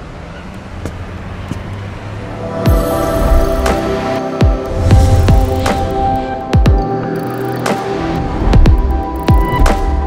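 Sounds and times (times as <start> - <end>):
low rumble of road traffic: 0.0 - 6.3.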